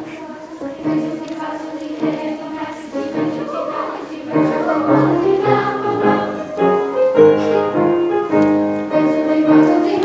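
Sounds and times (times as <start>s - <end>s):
choir singing in parts: 0.0s - 10.0s
grand piano accompaniment: 0.0s - 10.0s.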